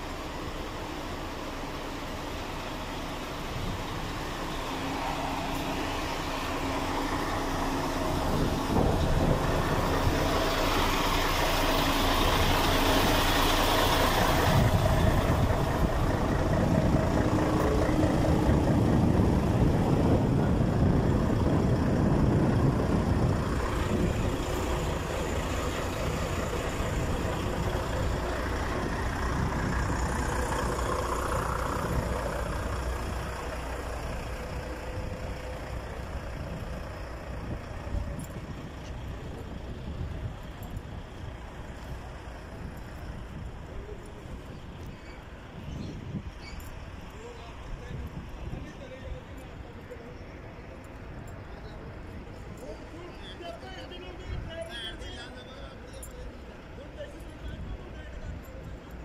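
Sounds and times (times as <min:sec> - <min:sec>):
diesel truck engine idling: 0:00.0 - 0:59.0.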